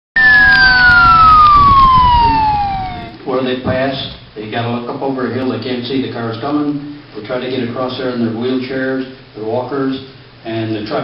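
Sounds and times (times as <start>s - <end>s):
fire truck siren wailing: 0.2s - 3.2s.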